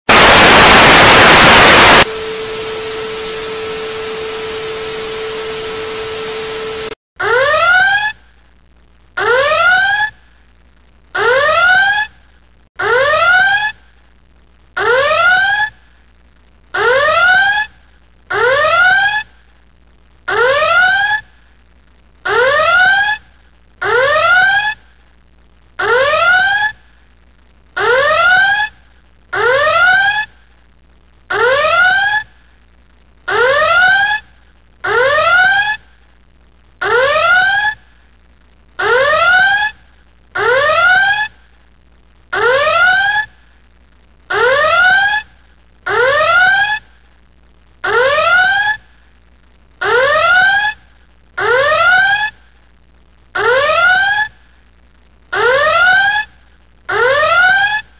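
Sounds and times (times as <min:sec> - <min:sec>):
electronic whooping alarm: 0:00.1 - 0:07.0.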